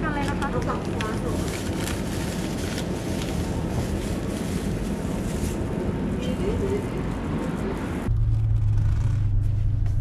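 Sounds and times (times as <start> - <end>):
low rumbling microphone noise: 3.4 - 10.0.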